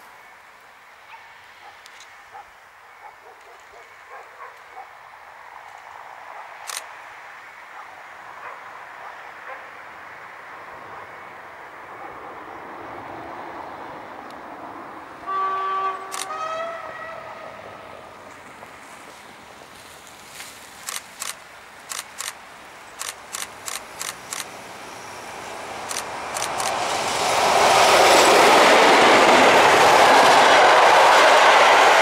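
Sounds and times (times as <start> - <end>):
locomotive horn blasts: 15.2 - 17.9
diesel locomotive running: 20.8 - 32.0.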